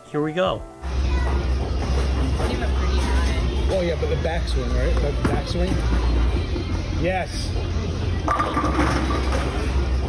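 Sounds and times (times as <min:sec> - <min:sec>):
faint background chatter: 0:00.8 - 0:10.0.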